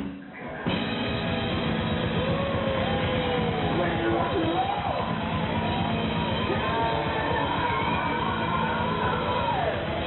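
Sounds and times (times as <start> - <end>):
hard rock band playing: 0.0 - 10.0.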